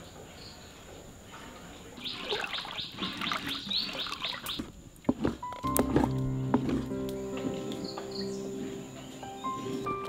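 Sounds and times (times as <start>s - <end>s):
bird chirping rapidly: 2.0s - 4.7s.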